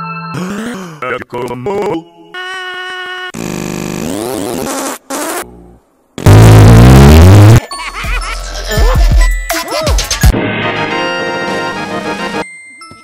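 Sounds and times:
loud distorted blast: 6.2 - 7.6.

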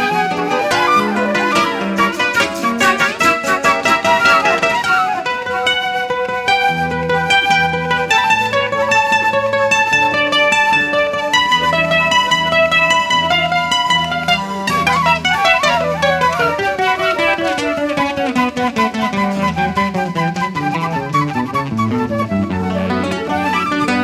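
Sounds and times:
guitar picking melody: 0.0 - 24.0.

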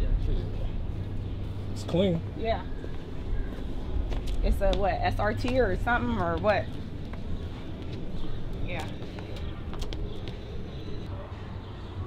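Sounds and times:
murmur of people outdoors: 0.0 - 12.0.

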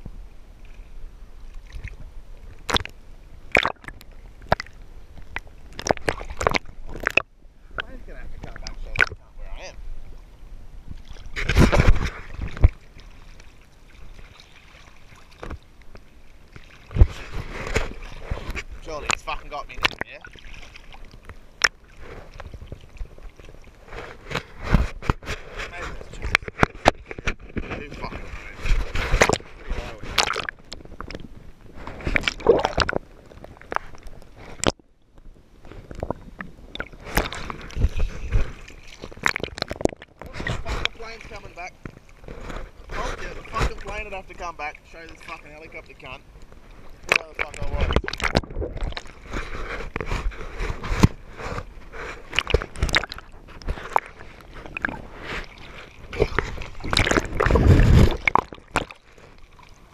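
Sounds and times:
waves breaking over camera: 0.0 - 59.9
sea water sloshing: 0.6 - 59.9
sharp splashes: 2.6 - 9.2, 11.0 - 15.8, 16.5 - 22.0, 29.0 - 30.8, 32.0 - 33.0, 47.0 - 49.3, 52.2 - 59.9.

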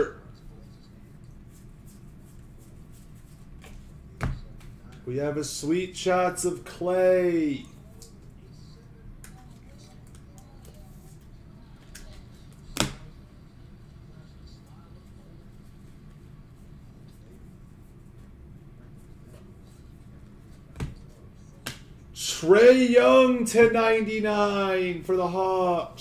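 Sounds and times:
low background hum: 0.0 - 26.0.

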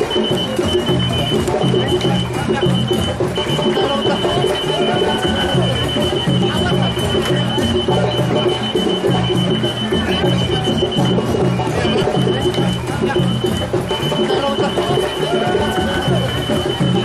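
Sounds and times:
bass-heavy music: 0.0 - 17.0.

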